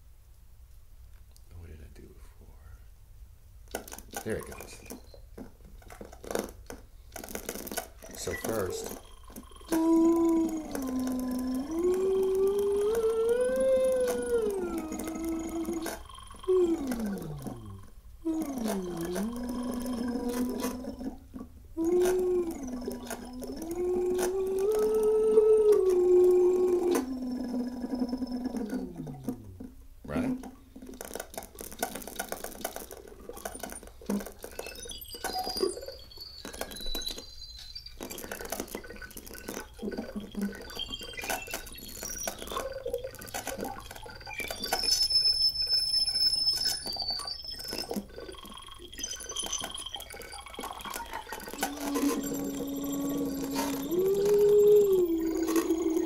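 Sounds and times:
synthesizer tone sliding between pitches: 51.4 - 56.0.

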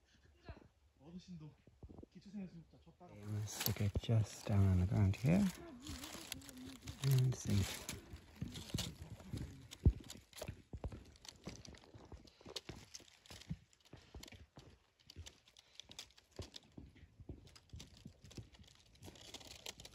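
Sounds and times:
dry leaves crackling: 3.2 - 10.5, 12.6 - 14.3, 17.6 - 19.9.

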